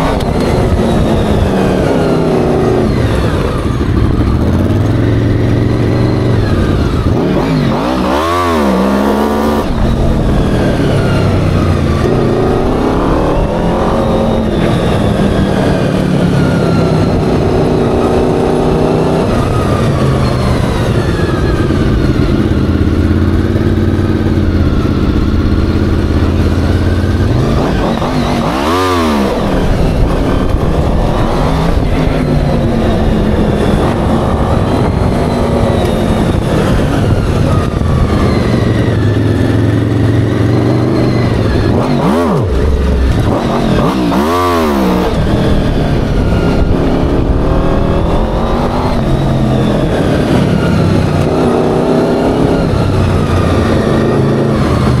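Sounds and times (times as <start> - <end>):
buggy engine running: 0.0 - 55.0.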